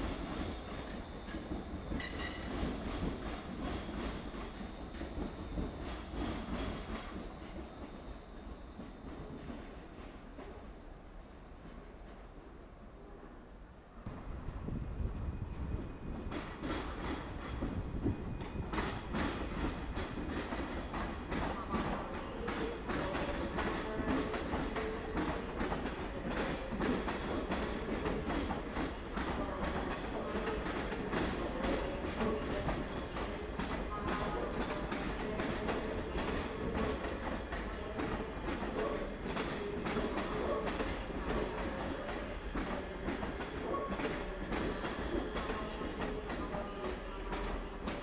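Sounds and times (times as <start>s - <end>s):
train wheels rumbling on rails: 0.0s - 10.7s, 14.0s - 48.0s.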